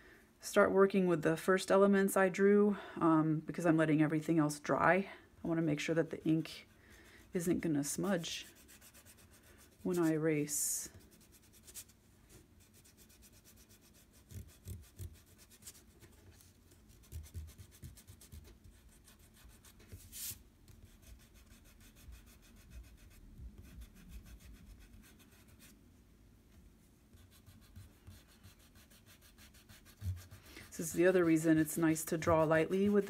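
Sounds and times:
eraser rubbing on paper: 6.2s - 10.2s, 10.8s - 12.0s, 12.6s - 25.7s, 27.2s - 33.0s.

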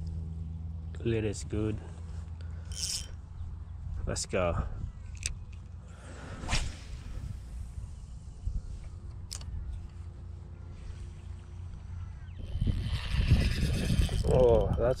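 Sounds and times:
fishing reel whirring: 2.7s - 3.2s, 12.2s - 14.8s
low rumble: 6.1s - 15.0s
fishing rod cast swish: 6.4s - 7.6s.

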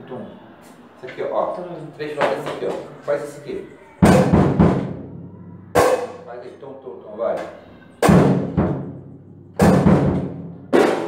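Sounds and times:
cymbal crash: 4.0s - 6.3s
sharp drum hit: 4.0s - 6.3s, 8.0s - 11.0s.

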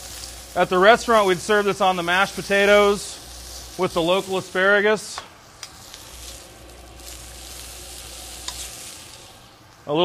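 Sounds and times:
food sizzling in a pan: 0.0s - 9.9s.

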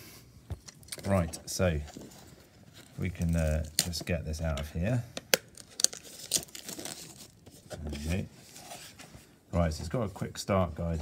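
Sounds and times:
plastic film crinkling and tearing: 2.8s - 4.1s, 5.3s - 8.2s.

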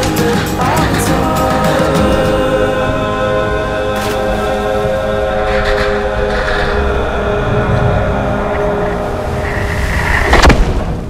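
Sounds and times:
film music with held chords: 0.0s - 10.9s.

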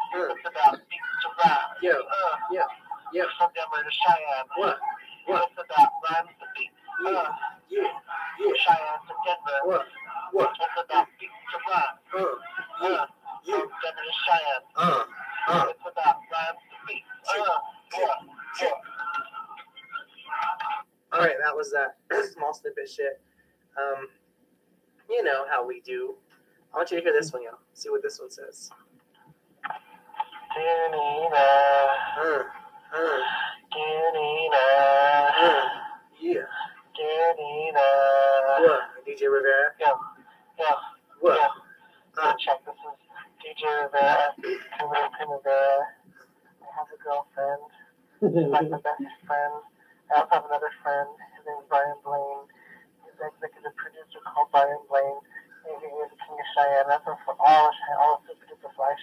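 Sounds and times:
man rapping through small speaker: 36.9s - 40.8s.

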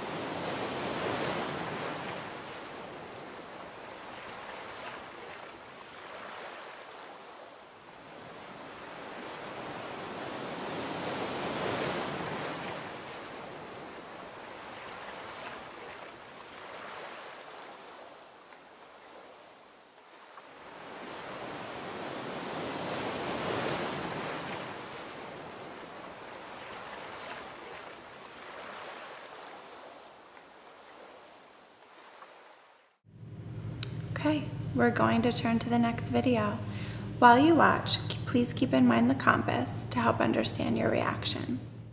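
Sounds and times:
ocean surf washing ashore: 0.0s - 40.5s.

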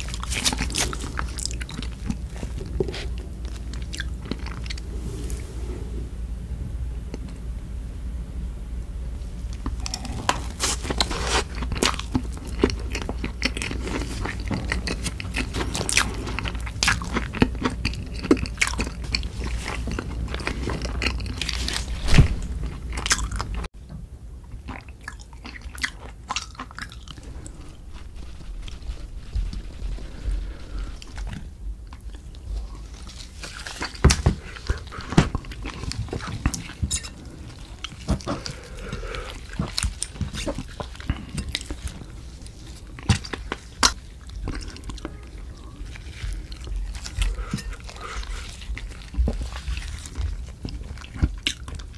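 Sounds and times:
close chewing: 0.0s - 4.9s, 9.5s - 23.7s, 24.5s - 51.9s
low steady hum: 0.0s - 51.9s.

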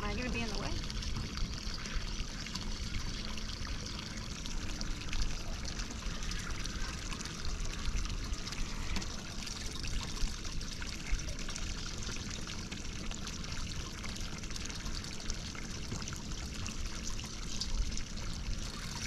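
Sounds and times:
water lapping against boat hull: 0.0s - 19.0s.

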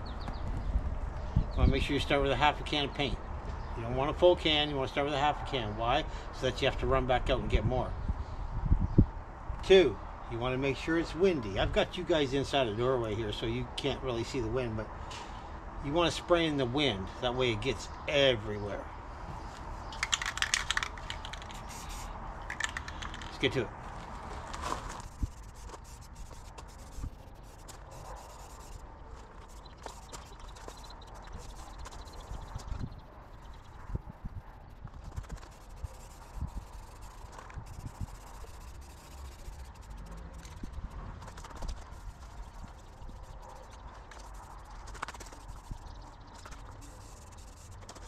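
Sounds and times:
wind rumbling on microphone: 0.0s - 4.0s, 6.7s - 10.5s, 19.2s - 47.8s
small clicks: 19.9s - 23.4s
spray paint can hissing: 20.0s - 23.4s, 25.0s - 33.7s, 34.6s - 48.0s.

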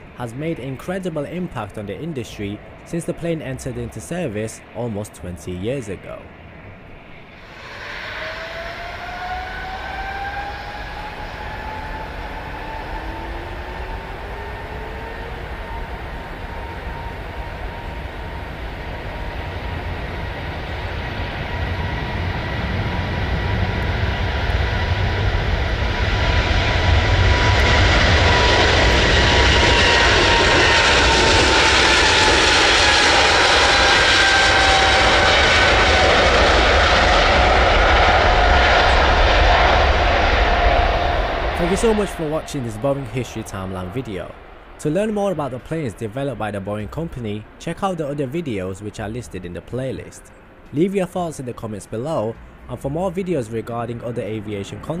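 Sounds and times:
jet engines on takeoff roll: 0.0s - 49.0s.

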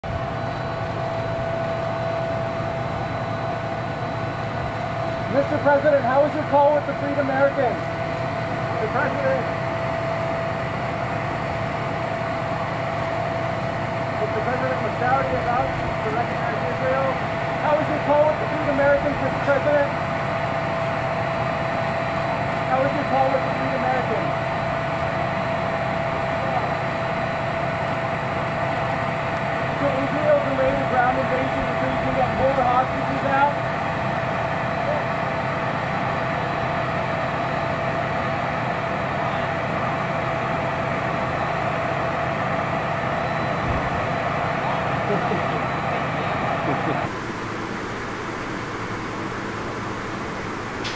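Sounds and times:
aircraft machinery drone and whine: 0.0s - 50.9s.

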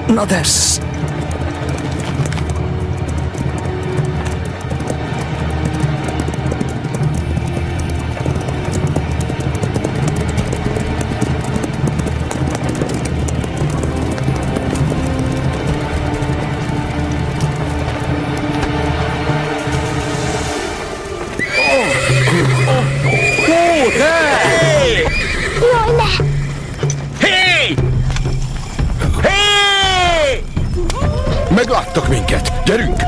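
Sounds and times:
horses' hooves clip-clopping: 0.0s - 33.0s
cartoon background music: 21.6s - 28.0s.

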